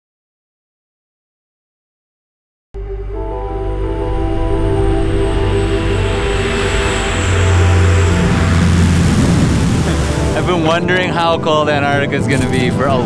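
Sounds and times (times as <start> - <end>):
turboprop plane drone: 2.8 - 11.4
deep hum: 2.8 - 11.6
sustained music tones: 2.8 - 13.0.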